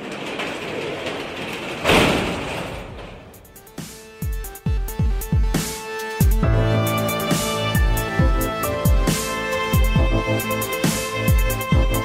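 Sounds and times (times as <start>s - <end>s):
noisy rumbling: 0.0s - 5.2s
opening theme music: 3.3s - 12.0s.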